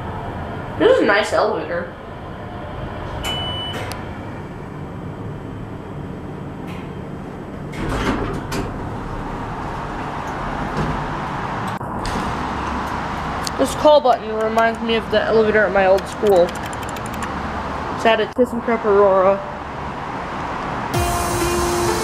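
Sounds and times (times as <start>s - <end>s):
elevator running noise: 0.0s - 17.9s
elevator car stopping clunk: 3.1s - 4.6s
elevator doors sliding open: 7.7s - 12.4s.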